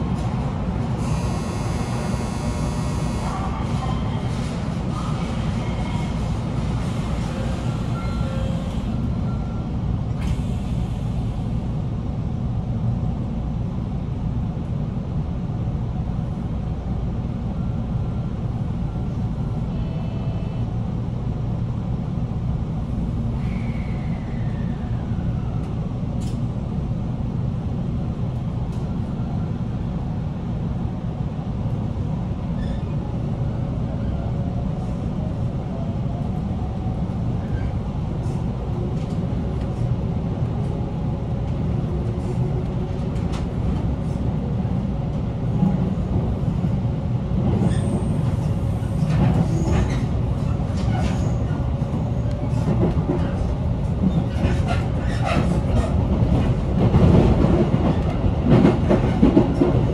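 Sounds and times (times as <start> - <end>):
electric train rumble and hum: 0.0 - 59.9.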